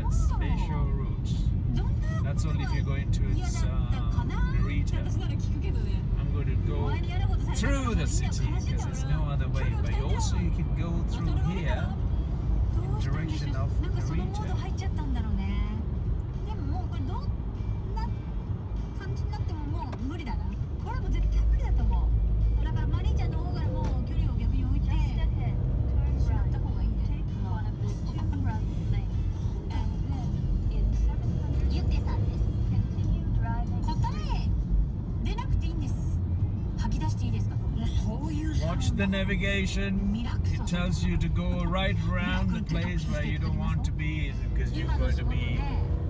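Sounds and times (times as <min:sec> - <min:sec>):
car road and engine rumble: 0:00.0 - 0:46.0
music: 0:00.0 - 0:46.0.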